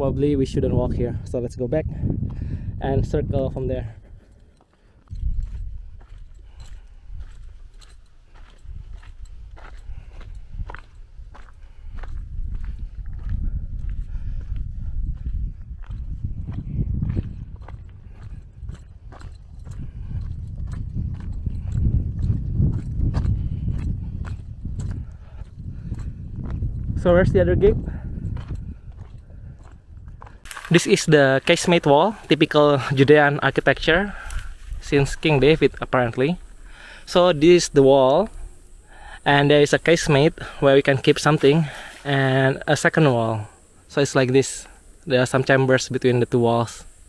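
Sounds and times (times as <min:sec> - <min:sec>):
wind on microphone: 0:00.0 - 0:04.4, 0:05.0 - 0:30.7, 0:31.4 - 0:40.6
footsteps on dry grass: 0:03.7 - 0:45.0.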